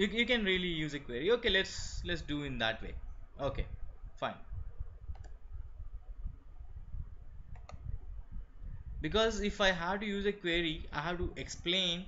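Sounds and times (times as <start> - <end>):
computer mouse clicking: 5.1 - 5.4, 7.5 - 7.9.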